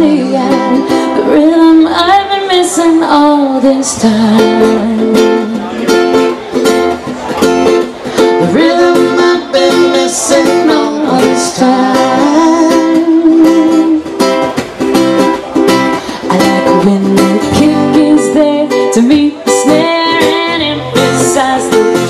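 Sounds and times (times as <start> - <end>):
ukulele and acoustic guitar strumming: 0.0 - 22.0.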